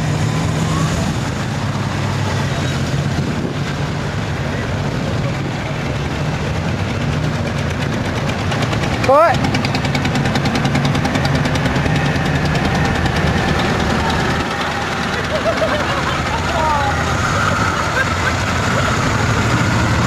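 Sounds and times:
motorcycles rolling past: 0.0s - 20.0s.

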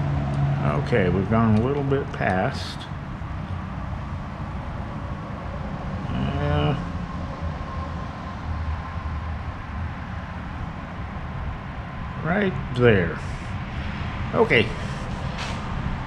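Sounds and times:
murmured voice: 6.0s - 6.8s, 12.2s - 13.5s, 14.4s - 15.2s.

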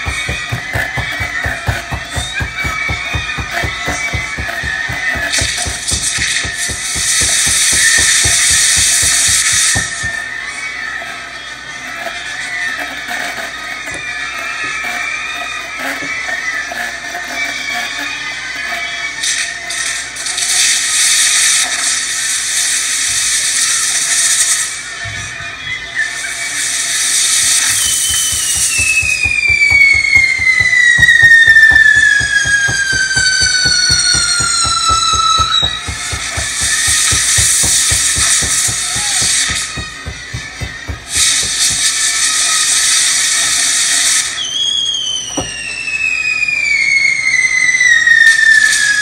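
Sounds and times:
fireworks hissing: 0.0s - 10.3s, 26.4s - 46.1s
falling firework whistle: 0.0s - 10.6s, 19.2s - 49.0s.

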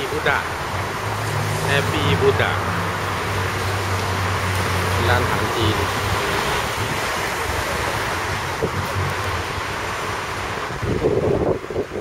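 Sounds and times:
street noise: 0.0s - 12.0s
wind on microphone: 5.7s - 12.0s.

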